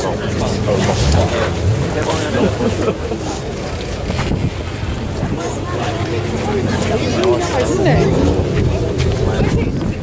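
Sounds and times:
crowd chatter: 0.0s - 10.0s
steady low rumble: 0.0s - 10.0s
wind buffeting microphone: 3.9s - 10.0s.

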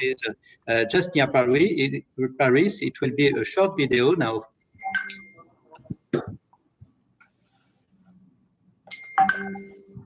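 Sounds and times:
electronic bell-like chime: 8.9s - 10.0s.

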